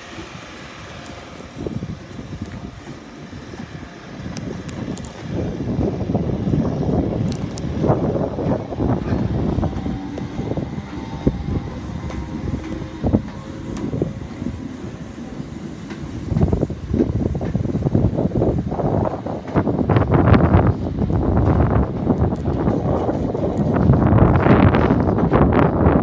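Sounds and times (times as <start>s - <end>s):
electric train pulling away: 0.0s - 26.0s
train wheels on rails: 0.0s - 26.0s
wind buffeting microphone: 0.0s - 26.0s.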